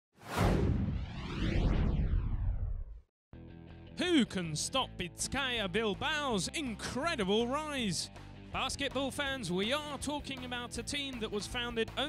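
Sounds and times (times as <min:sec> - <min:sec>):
rushing whoosh sweep: 0:00.2 - 0:02.9
low rumble: 0:00.3 - 0:03.1.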